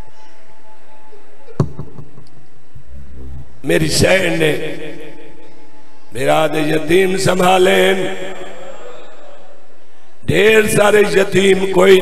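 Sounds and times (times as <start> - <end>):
sharp knock: 1.6 - 2.2.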